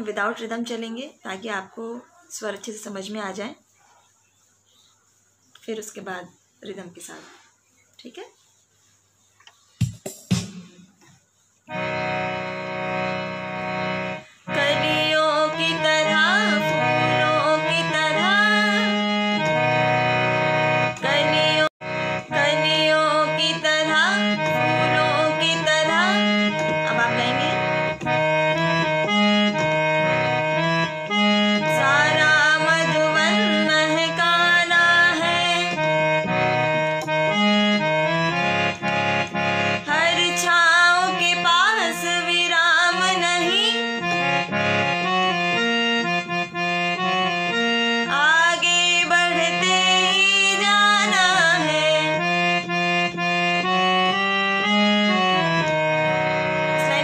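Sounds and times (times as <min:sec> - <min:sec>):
harmonium playing: 0:11.6 - 0:57.0
woman singing: 0:14.5 - 0:19.5, 0:20.9 - 0:27.8, 0:31.6 - 0:36.2, 0:39.8 - 0:44.1, 0:48.0 - 0:52.3, 0:56.7 - 0:57.0.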